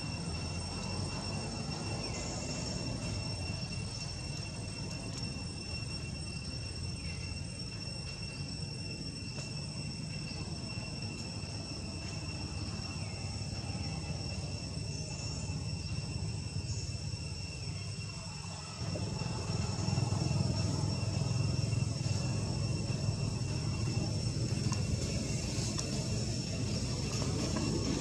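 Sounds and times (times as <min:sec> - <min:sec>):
high-pitched insect drone: 0:00.0 - 0:28.0.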